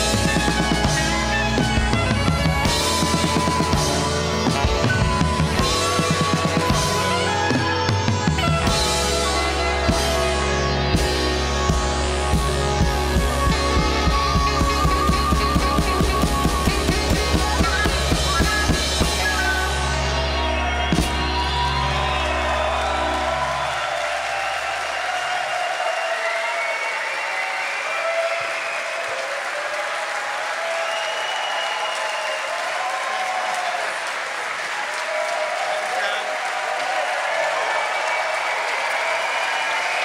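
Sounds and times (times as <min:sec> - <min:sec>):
live band playing: 0:00.0 - 0:24.4
audience applauding and cheering: 0:00.0 - 0:40.0
drum beat: 0:12.4 - 0:19.4.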